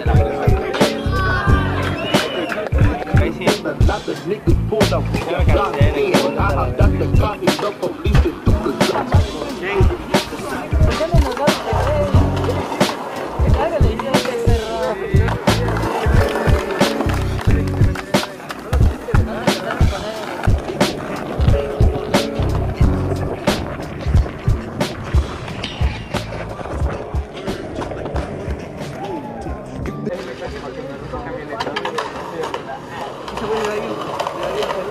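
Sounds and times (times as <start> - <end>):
music with vocals: 0.0 - 30.2
skateboard clacks: 0.0 - 30.8, 31.4 - 34.9
skateboard wheels rolling on concrete: 0.0 - 34.9.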